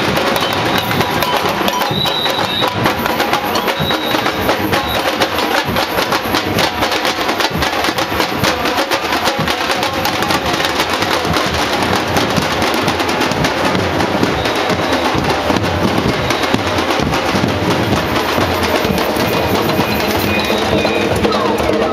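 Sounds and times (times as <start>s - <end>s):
percussion group drumming: 0.0s - 21.9s.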